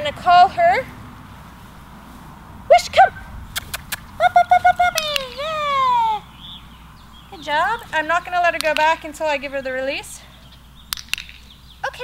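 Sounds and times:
woman's high-pitched calls: 4.2 - 6.3.

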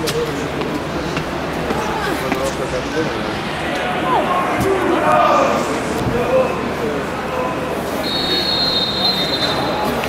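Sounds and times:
stadium crowd murmur: 0.0 - 10.0
shrill whistle: 8.0 - 9.8.

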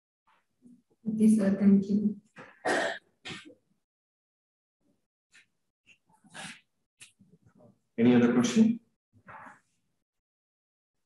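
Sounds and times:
person clearing throat: 2.6 - 3.5.

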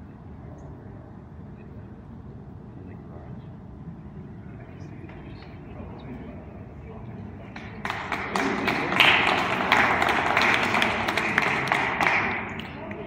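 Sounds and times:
people applauding: 7.5 - 13.0.

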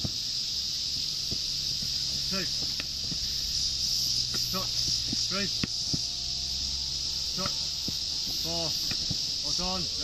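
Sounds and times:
high-pitched drone of insects: 0.0 - 10.0.

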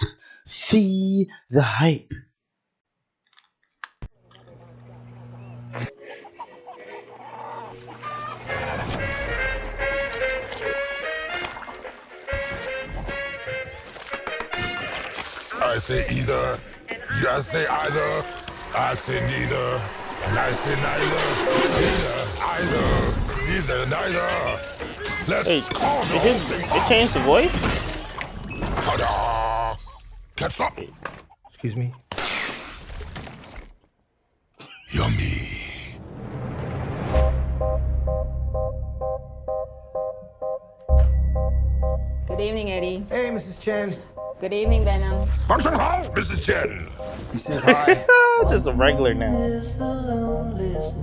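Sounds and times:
chickens clucking: 5.4 - 9.1, 31.1 - 32.1.

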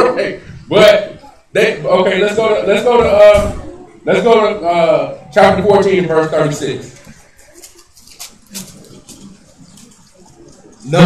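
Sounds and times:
pages turning: 6.9 - 10.2.

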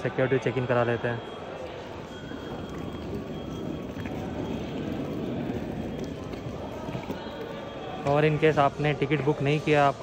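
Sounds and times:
suitcase wheels rattling on concrete: 2.0 - 8.0.

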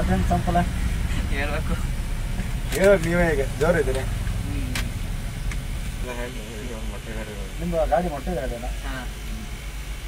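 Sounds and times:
truck engine rumbling: 0.0 - 10.0.

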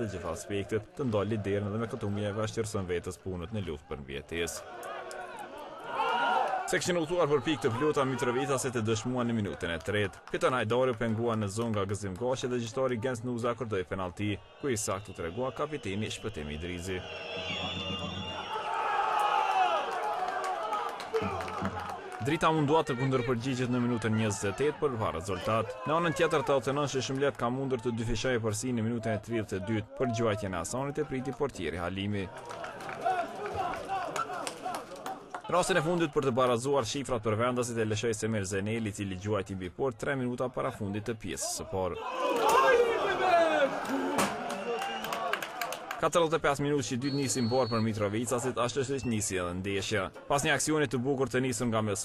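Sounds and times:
football crowd cheering and shouting: 0.0 - 38.0, 40.6 - 52.0
people shouting: 4.6 - 6.7, 17.0 - 24.7, 32.6 - 35.2, 42.0 - 45.6.

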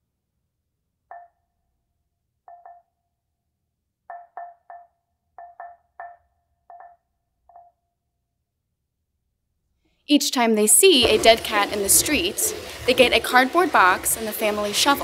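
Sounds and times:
mallets knocking on wood: 1.1 - 1.5, 2.5 - 3.0, 4.1 - 7.9.

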